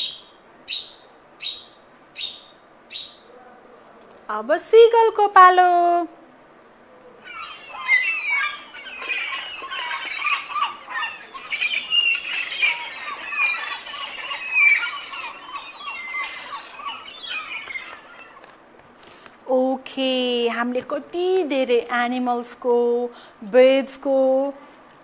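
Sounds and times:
recorded seagull calls: 7.1 - 18.6.

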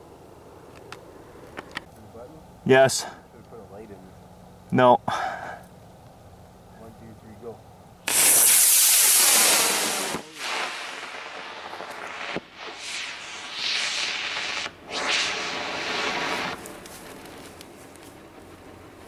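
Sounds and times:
rocket motor rushing hiss: 8.0 - 18.3
sharp pop: 8.1 - 10.7.

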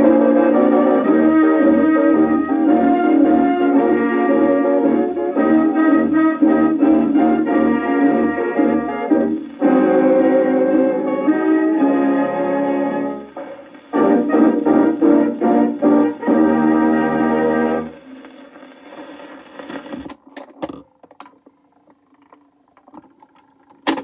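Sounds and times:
dance band record playing: 0.0 - 20.5
record surface noise and clicks: 13.2 - 15.0, 16.8 - 24.0.

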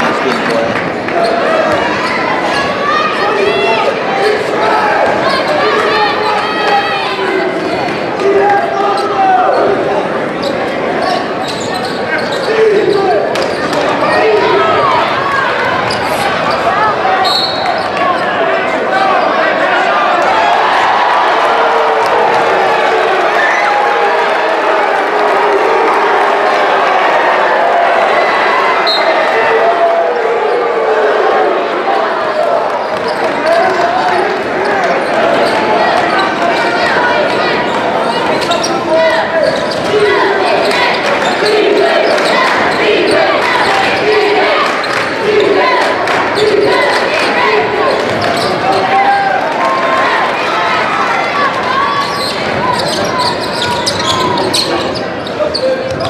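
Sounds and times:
crowd voices echoing in a gym: 0.0 - 56.0.

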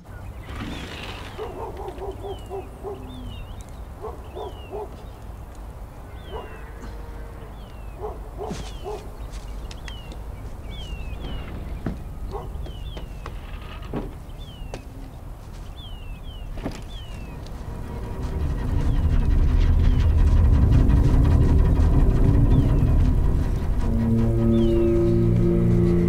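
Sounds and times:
small birds chirping: 0.0 - 26.0
animal repeated low calls: 0.8 - 5.1, 6.1 - 9.2
low steady rumble: 1.5 - 26.0.

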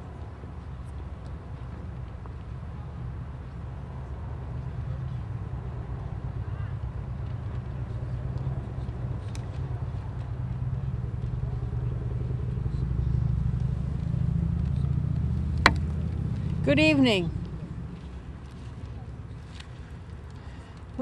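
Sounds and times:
low outdoor rumble: 0.0 - 21.0.

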